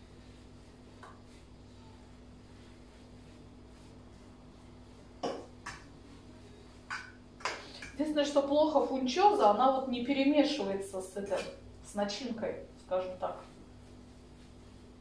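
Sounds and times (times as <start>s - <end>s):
low steady hum: 0.0s - 15.0s.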